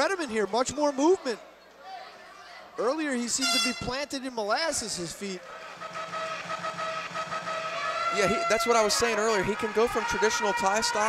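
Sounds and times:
crowd noise in arena: 0:00.0 - 0:11.0
held tone: 0:03.4 - 0:04.0.

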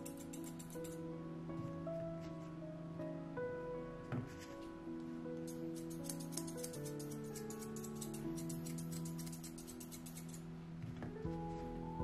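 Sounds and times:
grooming shears snipping hair: 0:00.0 - 0:01.0, 0:05.4 - 0:10.4
soft background music: 0:00.0 - 0:12.0.

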